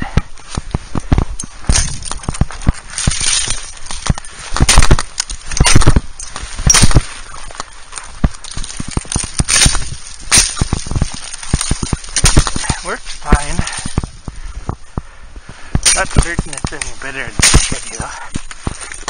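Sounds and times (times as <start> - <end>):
axe chopping shrub stems: 1.1 - 7.2, 8.1 - 14.2, 15.8 - 18.9.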